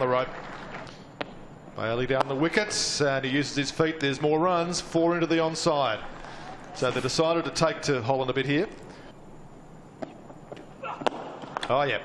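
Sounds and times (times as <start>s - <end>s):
low even hiss: 0.9s - 10.4s
commentator speaking: 1.8s - 8.8s.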